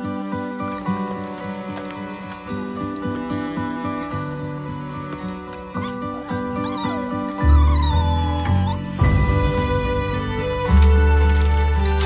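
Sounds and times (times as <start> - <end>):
soft orchestral music: 0.0 - 12.0
puppy whimpering: 5.6 - 9.0.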